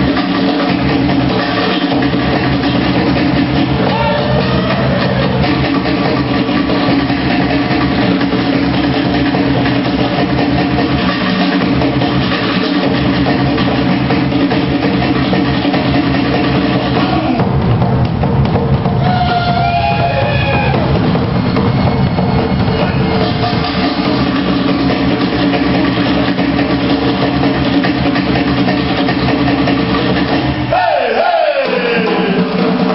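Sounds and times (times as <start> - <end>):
drumming: 0.0 - 32.9
loud live band music: 0.0 - 32.9.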